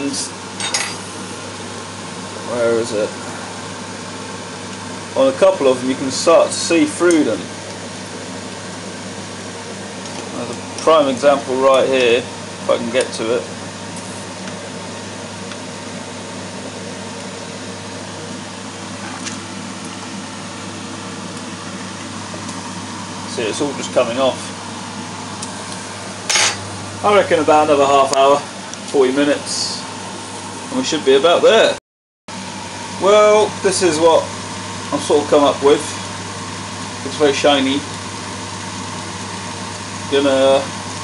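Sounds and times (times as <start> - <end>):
water boiling with hiss: 0.0 - 41.0.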